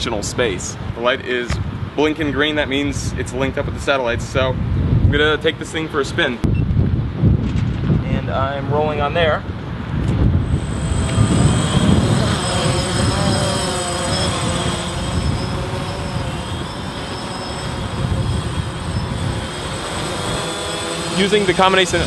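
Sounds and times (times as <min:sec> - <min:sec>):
wind rumble on microphone: 0:00.0 - 0:22.0
quadcopter whirring whine: 0:06.4 - 0:22.0.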